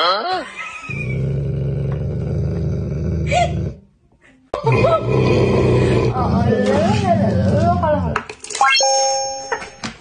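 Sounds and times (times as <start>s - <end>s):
dog growling: 0.9s - 3.8s, 4.6s - 8.2s.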